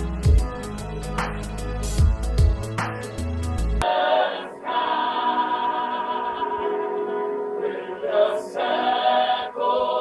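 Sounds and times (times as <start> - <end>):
choir singing sustained chords: 3.2 - 10.0.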